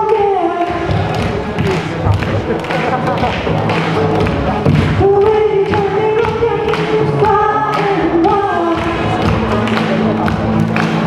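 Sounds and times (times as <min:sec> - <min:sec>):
pop song with singing: 0:00.0 - 0:11.0.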